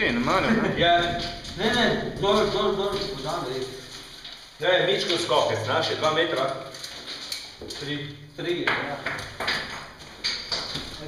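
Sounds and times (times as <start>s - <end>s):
hard objects knocking and scraping: 8.6s - 11.0s.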